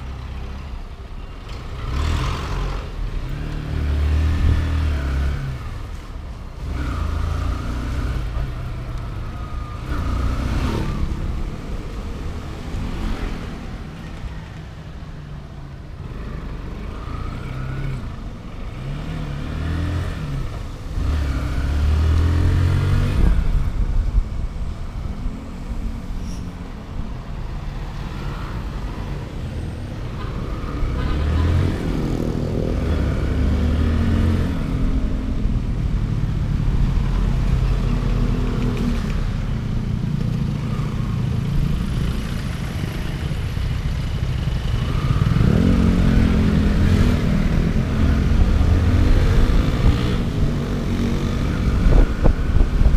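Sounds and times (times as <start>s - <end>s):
tyres on wet road: 0.0s - 52.9s
wind noise: 22.3s - 27.5s, 44.9s - 52.9s.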